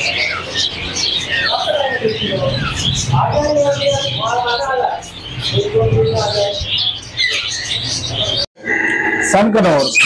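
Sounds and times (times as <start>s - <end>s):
indistinct voices: 0.0s - 10.0s
parrots and birds chirping: 0.0s - 10.0s.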